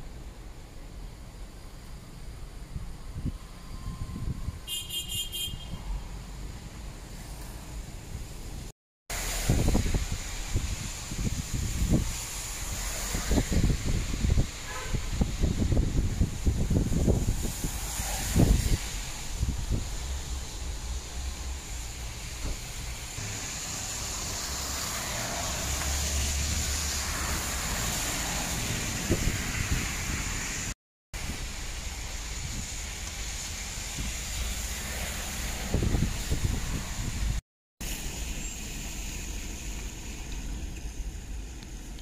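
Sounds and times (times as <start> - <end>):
car road and engine rumble: 0.0 - 42.0.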